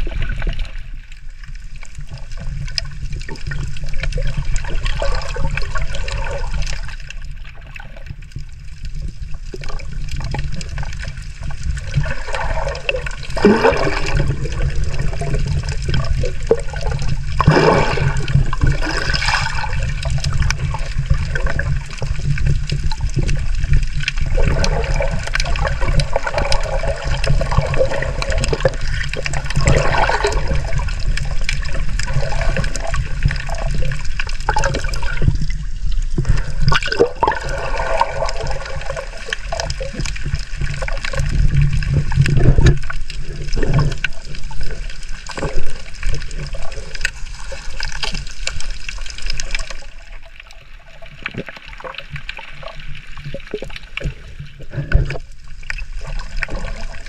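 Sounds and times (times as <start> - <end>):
underwater clicks and crackles: 0.0 - 57.0
underwater low rush with bubbling: 0.0 - 57.0.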